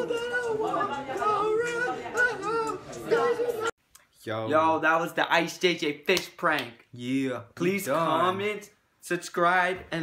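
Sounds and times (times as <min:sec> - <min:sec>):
high-pitched voice singing: 0:00.0 - 0:03.7.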